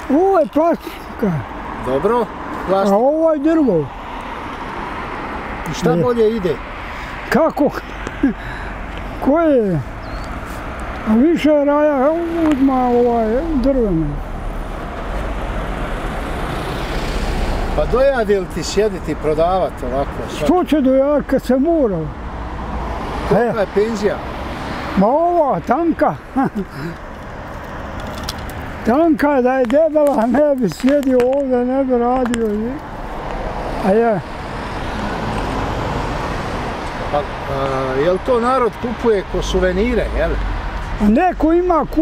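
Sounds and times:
car passing on road: 0.0 - 42.0.

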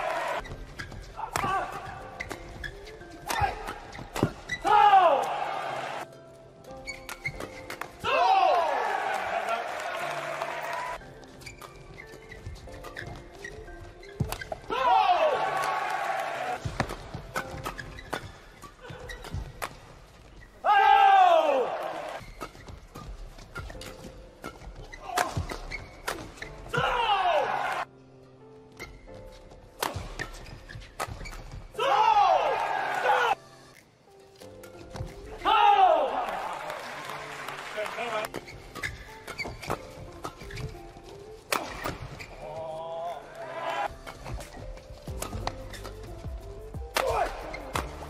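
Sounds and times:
background music: 0.0 - 48.0
shoes squeaking on court: 0.1 - 4.7, 6.6 - 8.0, 10.5 - 14.7, 16.6 - 20.6, 22.2 - 27.0, 28.4 - 31.8, 38.0 - 42.9, 43.8 - 48.0
rackets striking shuttlecock: 0.8 - 5.4, 6.9 - 8.0, 14.2 - 14.7, 16.6 - 20.0, 22.2 - 26.9, 29.8 - 31.6, 41.4 - 42.3, 44.0 - 48.0.

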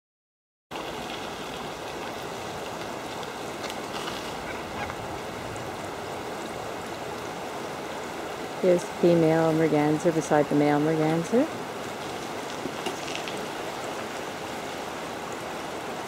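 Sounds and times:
fast-flowing river rushing: 0.8 - 16.0.

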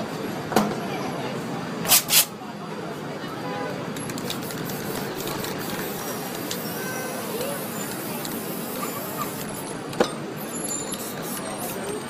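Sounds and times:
street noise: 0.0 - 12.0
voices: 0.1 - 12.0
spray paint can hissing: 1.9 - 2.3, 4.2 - 9.7, 10.9 - 11.9.

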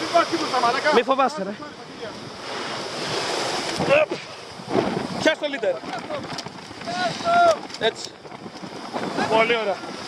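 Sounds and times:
surf breaking on rocks: 0.0 - 10.0
wind on microphone: 1.7 - 10.0.

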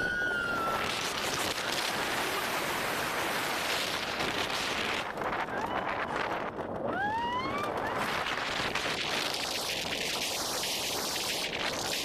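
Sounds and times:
wind rushing over microphone: 0.0 - 12.0.

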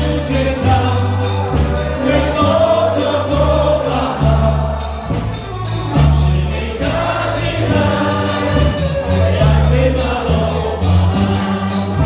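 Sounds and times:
live dance band playing: 0.0 - 12.0
person singing: 0.0 - 12.0.

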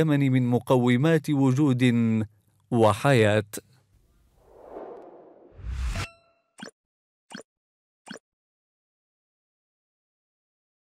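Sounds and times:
swish into low hit: 4.4 - 6.1.

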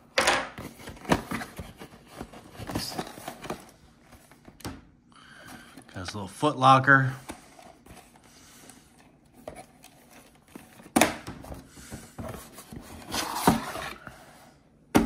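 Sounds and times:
cardboard packaging scraping and rustling: 0.6 - 4.4, 9.3 - 11.0, 12.1 - 14.3.

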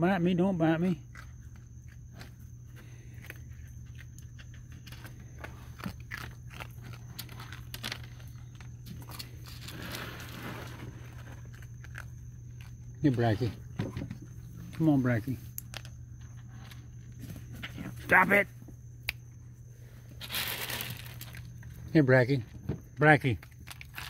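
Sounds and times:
animals chewing dry kibble: 0.9 - 17.9, 20.1 - 21.9, 23.3 - 24.0.

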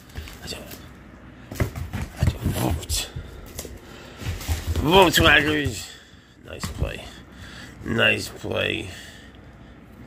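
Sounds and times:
person's voice: 4.8 - 7.2, 7.8 - 9.1.

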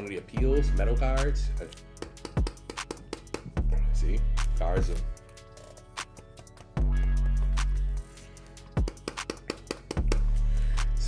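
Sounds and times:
background music quick beats: 0.0 - 11.0.

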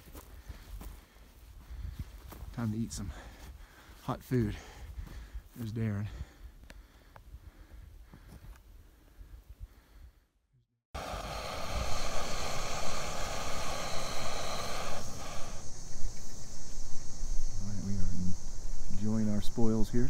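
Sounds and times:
gas stove burner hissing: 11.0 - 20.0.

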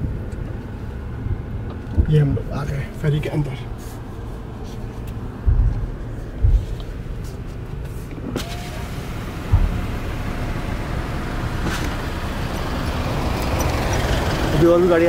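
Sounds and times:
car cabin rumble: 0.0 - 15.0
road and deck noise: 0.0 - 15.0
dull low thumps: 1.2 - 8.3, 9.3 - 12.7.

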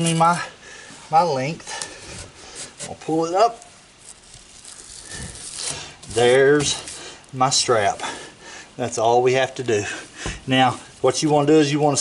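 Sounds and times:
fabric strap scraping through buckle: 4.0 - 7.1.

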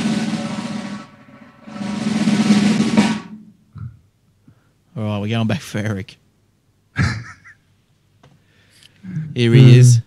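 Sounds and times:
drum roll: 0.0 - 3.7.

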